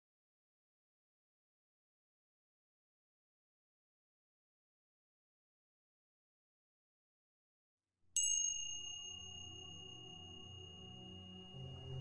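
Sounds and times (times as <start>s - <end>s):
high bell-like chime: 8.2s - 12.0s
low ambient music drone: 8.5s - 12.0s.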